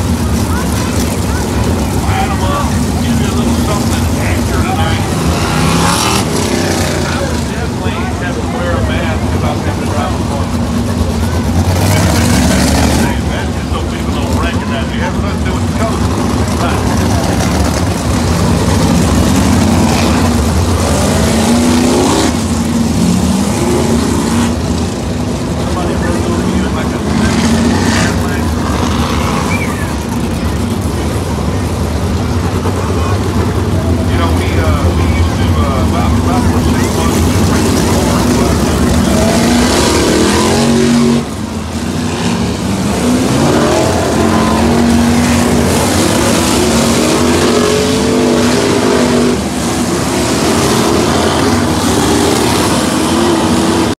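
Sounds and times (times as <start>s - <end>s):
race car engines passing: 0.0s - 53.9s.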